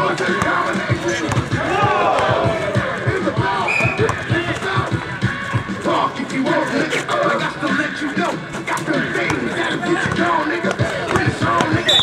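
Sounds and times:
basketball bouncing on asphalt: 0.0 - 6.0, 8.8 - 12.0
players shouting: 0.0 - 12.0.

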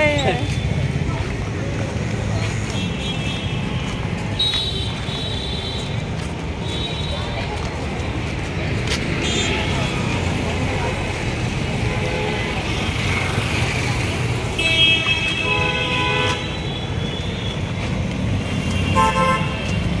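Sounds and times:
road traffic rumble: 0.0 - 20.0
vehicle horns honking: 14.6 - 17.6, 18.6 - 20.0.

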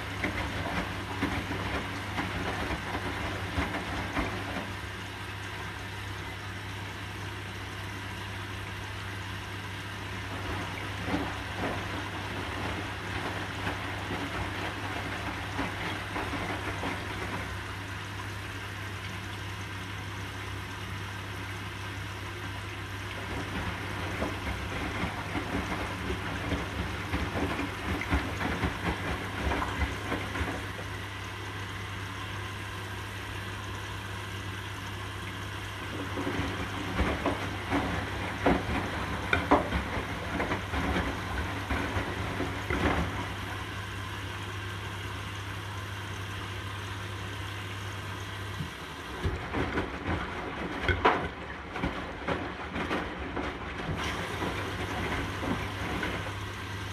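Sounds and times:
washing machine drum tumbling: 0.0 - 5.4, 10.1 - 18.6, 22.5 - 31.9, 33.2 - 44.6, 46.7 - 56.9
water sloshing and splashing: 0.0 - 56.9.

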